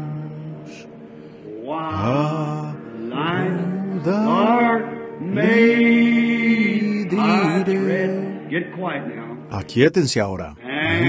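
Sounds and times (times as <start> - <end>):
person singing a slow hymn: 0.0 - 8.6, 10.8 - 11.0.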